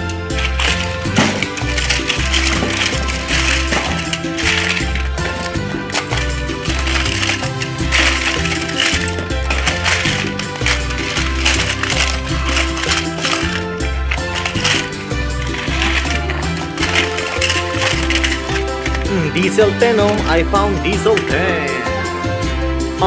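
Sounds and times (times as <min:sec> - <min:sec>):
background music with bass: 0:00.0 - 0:23.0
toy trains clattering: 0:00.0 - 0:23.0.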